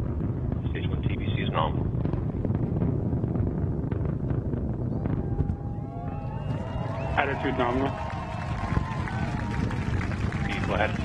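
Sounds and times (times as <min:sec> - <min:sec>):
rocket engines rumbling and crackling: 0:00.0 - 0:11.0.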